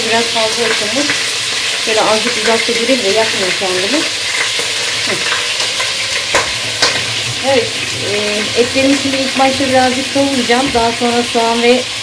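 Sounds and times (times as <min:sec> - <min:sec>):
meat sizzling in hot oil: 0:00.0 - 0:12.0.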